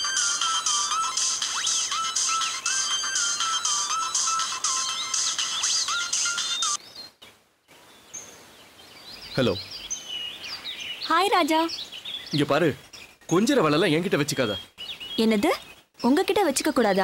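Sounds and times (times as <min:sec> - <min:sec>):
mobile phone ringtone: 0:00.0 - 0:06.8
birds chirping faintly: 0:00.0 - 0:17.0.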